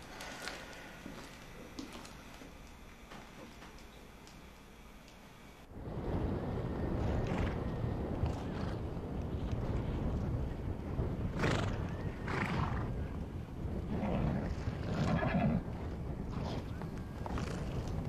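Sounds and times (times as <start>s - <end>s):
constant low rumble: 0.0s - 18.0s
horses neighing: 13.9s - 15.7s.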